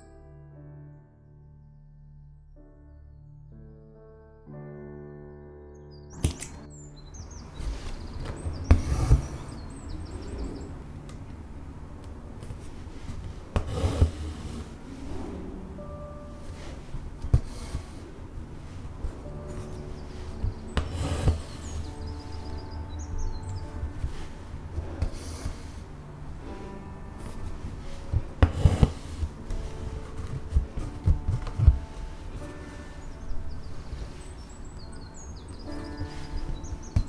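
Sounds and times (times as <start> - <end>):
soft piano music: 0.0 - 37.0
faint high chirping: 5.6 - 11.1, 14.6 - 28.3, 29.4 - 37.0
scissors snipping thread: 6.2 - 6.7
handling noise on fabric: 7.4 - 11.4, 12.0 - 37.0.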